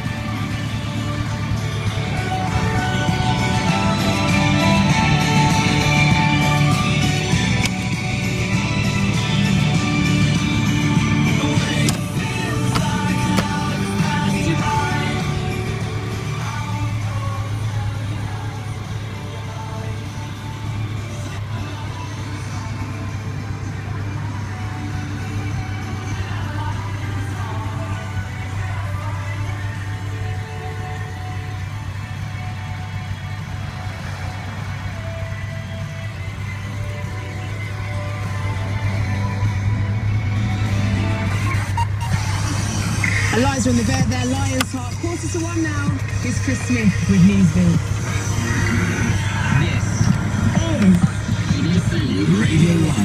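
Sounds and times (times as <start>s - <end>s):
pop music on a radio: 0.0s - 53.0s.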